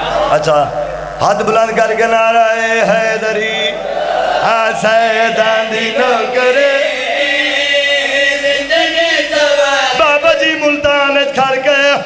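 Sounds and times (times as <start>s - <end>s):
men chanting into microphones: 0.0s - 12.0s.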